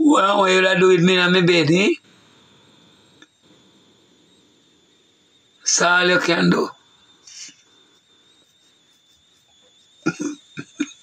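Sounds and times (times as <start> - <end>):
thin high-pitched whine: 0.0 - 11.0
faint hiss: 5.7 - 8.4.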